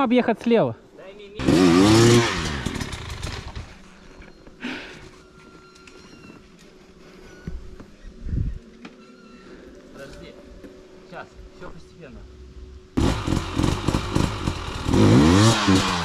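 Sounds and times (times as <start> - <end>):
dirt bike engine revving: 1.4 - 3.8, 13.0 - 16.0.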